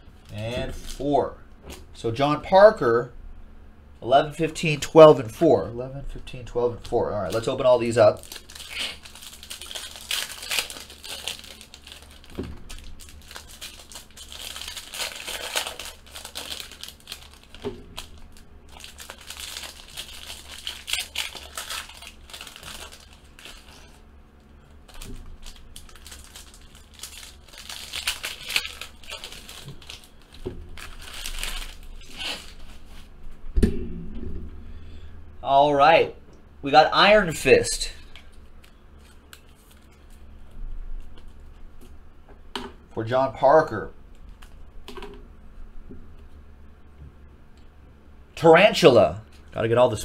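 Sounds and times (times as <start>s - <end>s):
person speaking: 4.0s - 8.3s, 35.4s - 38.2s
foil wrappers crinkling: 6.7s - 33.1s, 37.8s - 40.4s.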